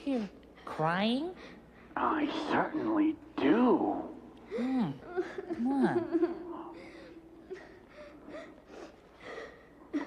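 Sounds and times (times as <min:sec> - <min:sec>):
boy sobbing: 0:04.5 - 0:10.0.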